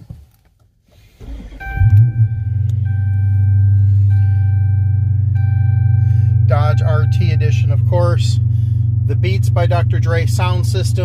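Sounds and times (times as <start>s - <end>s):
car engine starting and idling: 0.2s - 11.0s
electronic warning chime: 1.6s - 7.7s.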